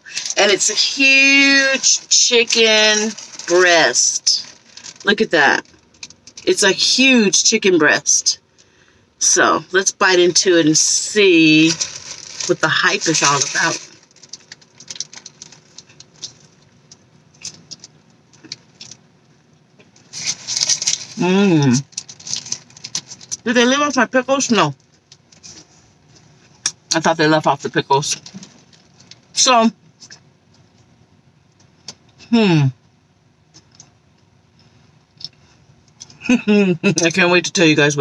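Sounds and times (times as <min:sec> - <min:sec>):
paper wrapper rustling: 0:00.1 - 0:06.4, 0:11.4 - 0:16.6, 0:20.0 - 0:23.4
chewing crispy food: 0:11.6 - 0:19.0, 0:19.8 - 0:23.4.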